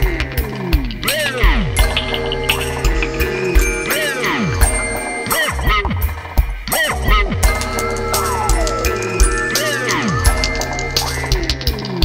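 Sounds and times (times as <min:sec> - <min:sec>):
steady drone: 0:00.0 - 0:05.6
percussive hits: 0:00.9 - 0:06.2.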